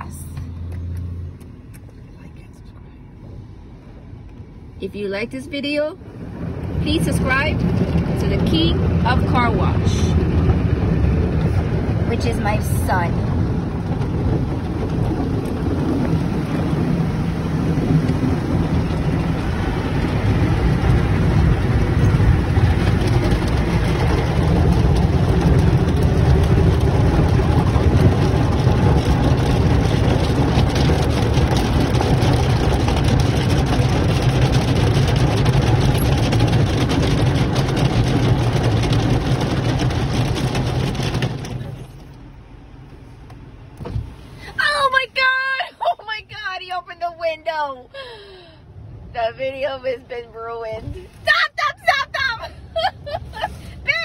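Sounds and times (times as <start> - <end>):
car wash water spray rushing: 4.9 - 45.6.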